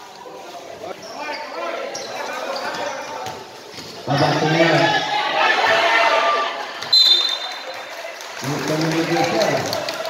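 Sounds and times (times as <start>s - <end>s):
crowd hubbub: 0.0s - 10.0s
referee's whistle blast: 6.9s - 7.6s.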